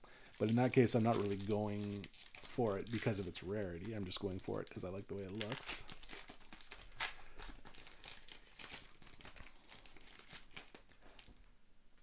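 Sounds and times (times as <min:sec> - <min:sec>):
foil wrapper crinkling and tearing: 0:00.1 - 0:11.5.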